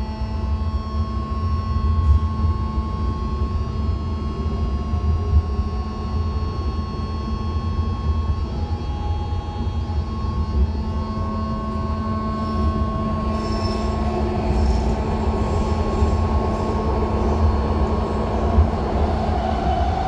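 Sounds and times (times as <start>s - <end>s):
electric propulsion whine: 0.0s - 20.0s
train wheels rumbling on rails: 9.5s - 20.0s
wheel squeals: 12.4s - 14.9s.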